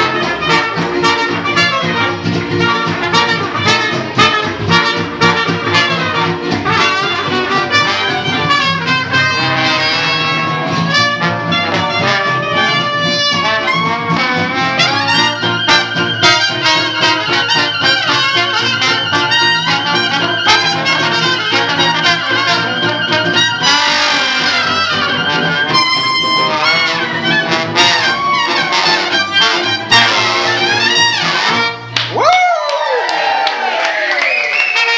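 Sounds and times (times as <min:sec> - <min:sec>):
strummed guitars: 0:00.0 - 0:32.0
trombone: 0:00.0 - 0:32.0, 0:34.6 - 0:34.9
clarinet: 0:00.0 - 0:32.1, 0:34.2 - 0:34.9
trumpet: 0:00.0 - 0:32.1, 0:34.3 - 0:34.9
upright bass: 0:00.0 - 0:32.4.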